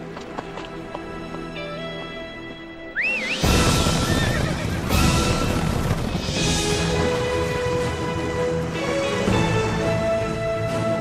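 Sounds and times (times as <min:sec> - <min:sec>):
horses galloping: 0:00.0 - 0:10.5
orchestral film music: 0:00.0 - 0:11.0
horse whinnying: 0:03.0 - 0:05.9.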